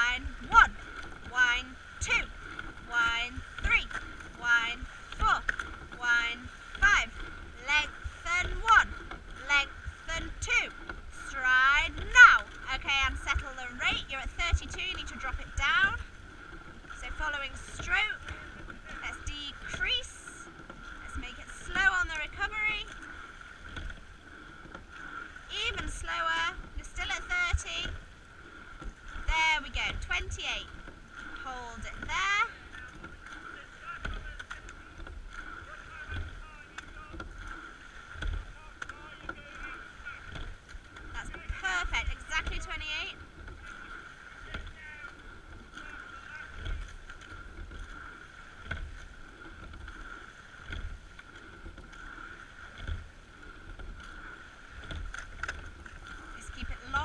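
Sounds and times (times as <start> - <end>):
boat knocking: 0.0 - 57.0
oars working the water: 0.0 - 57.0.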